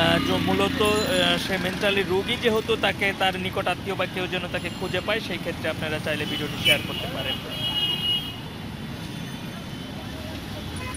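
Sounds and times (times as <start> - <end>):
street traffic rumble: 0.0 - 10.9.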